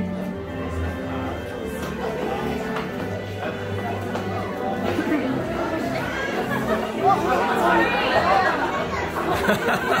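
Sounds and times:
music playing: 0.0s - 10.0s
voices chattering: 0.0s - 10.0s.

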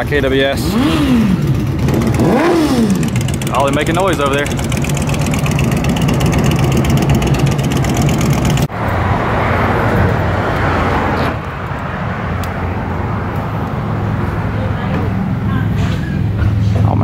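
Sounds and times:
motorcycle engine running: 0.0s - 8.7s
dull rushing noise: 0.0s - 17.0s.

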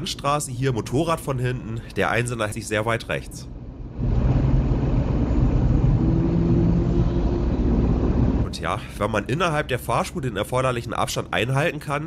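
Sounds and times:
road and tyre rumble: 0.0s - 12.0s.

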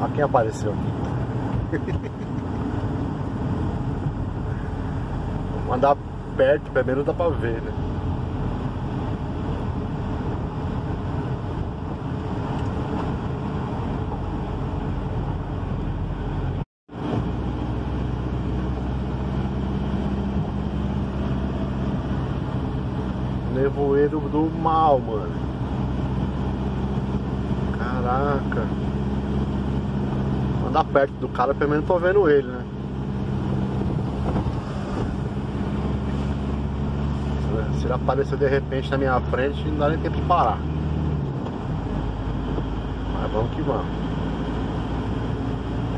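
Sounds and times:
car engine and road noise: 0.0s - 45.9s
low engine hum: 0.0s - 45.9s
tyre and wind noise: 32.7s - 37.6s.

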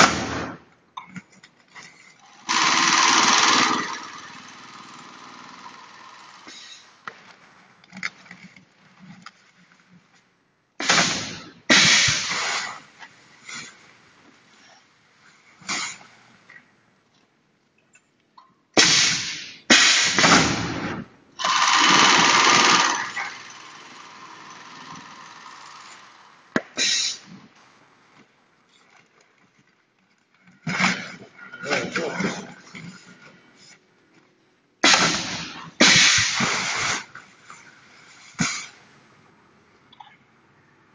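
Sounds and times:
pneumatic hissing bursts: 10.8s - 12.8s, 26.6s - 27.4s, 34.8s - 37.2s, 38.2s - 38.8s.

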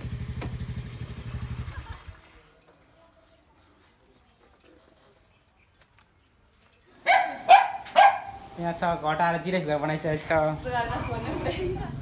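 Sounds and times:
dog barking: 7.0s - 8.4s.

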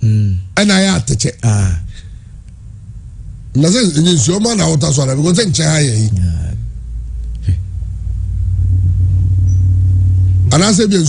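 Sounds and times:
loud low hum: 0.0s - 11.0s.

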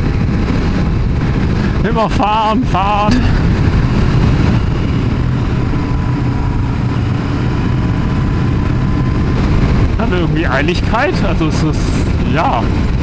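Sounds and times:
motorcycle engine running: 0.0s - 13.0s
wind rushing over microphone: 0.0s - 13.0s.

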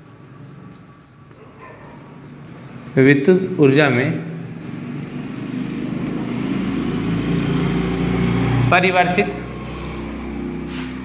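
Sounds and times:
engine running: 2.4s - 11.0s.

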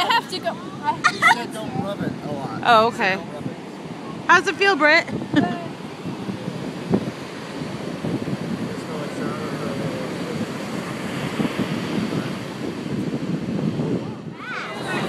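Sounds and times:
ocean surf washing on beach: 0.0s - 15.0s
wind buffeting microphone: 0.0s - 15.0s.

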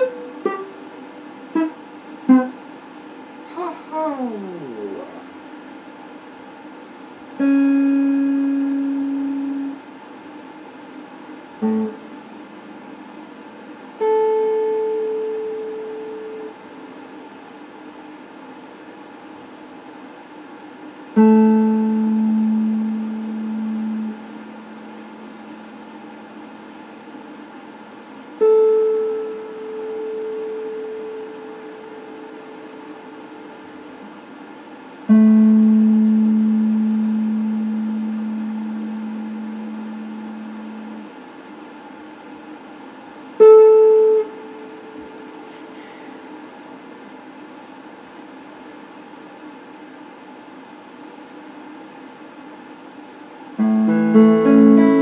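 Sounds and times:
electric guitar notes ringing: 0.0s - 0.9s, 1.5s - 2.6s, 7.4s - 9.8s, 11.6s - 13.2s, 14.0s - 16.6s, 21.2s - 25.8s, 28.4s - 33.2s, 35.1s - 41.1s, 43.4s - 45.6s, 53.6s - 55.0s.

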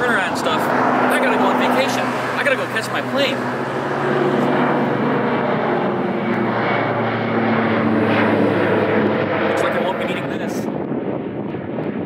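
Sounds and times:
airplane engines overhead: 0.0s - 12.0s.

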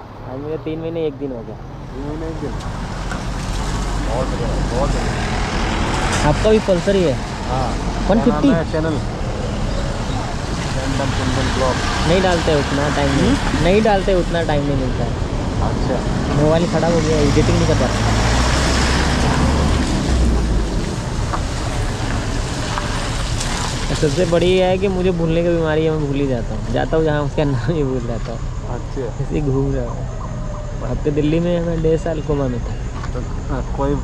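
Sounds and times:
vehicle engines idling: 0.0s - 34.0s
voice: 0.2s - 2.6s, 4.1s - 5.2s, 6.2s - 9.6s, 10.6s - 18.1s, 23.9s - 30.0s, 30.8s - 34.0s.

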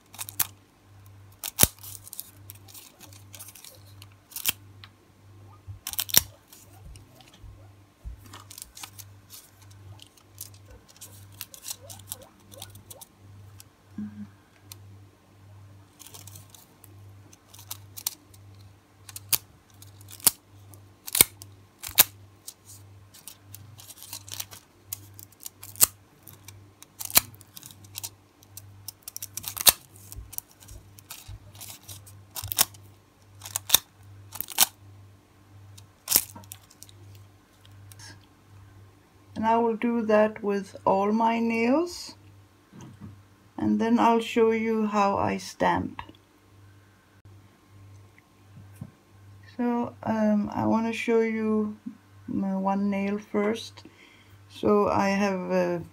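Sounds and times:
foil rustling: 0.0s - 0.6s, 1.3s - 4.6s, 5.8s - 7.4s, 8.0s - 13.1s, 15.9s - 34.7s, 35.7s - 38.1s
metallic foil crinkling: 0.0s - 0.6s, 1.3s - 4.7s, 5.8s - 7.4s, 8.2s - 13.6s, 15.9s - 34.8s, 35.7s - 38.2s.

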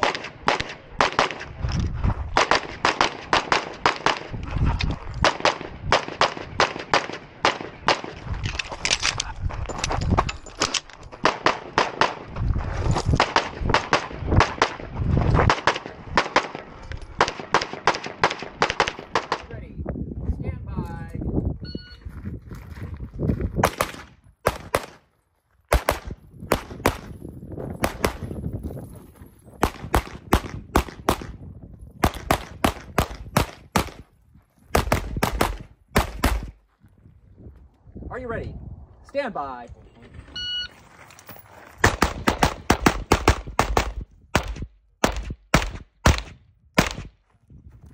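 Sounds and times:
pistol gunfire: 0.0s - 1.5s, 2.4s - 4.3s, 5.2s - 8.2s, 11.2s - 12.2s, 15.5s - 19.5s, 23.6s - 25.0s, 25.7s - 27.1s, 27.8s - 28.3s, 29.6s - 31.4s, 32.0s - 34.1s, 34.7s - 36.6s, 41.8s - 47.2s.

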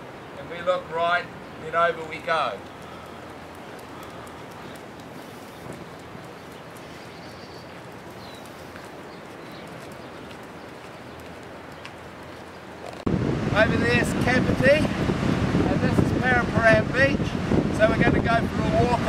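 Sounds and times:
outdoor background noise: 0.0s - 19.0s
footsteps on paved street: 2.3s - 13.1s
faint bird chirps: 6.4s - 10.4s.

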